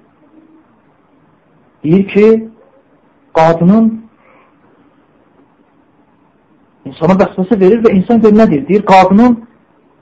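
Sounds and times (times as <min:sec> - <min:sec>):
man lecturing: 0:01.8 - 0:02.6, 0:03.3 - 0:04.2, 0:06.8 - 0:09.6.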